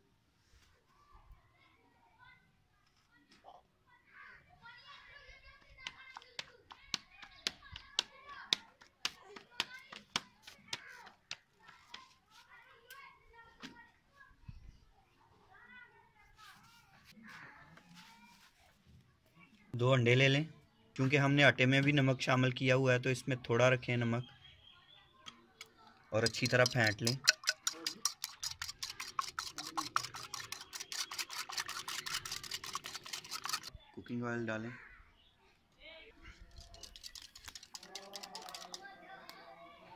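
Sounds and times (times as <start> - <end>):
whisk clicking against bowl: 26.2 - 33.7, 36.6 - 38.8
background voices chattering: 35.1 - 39.9.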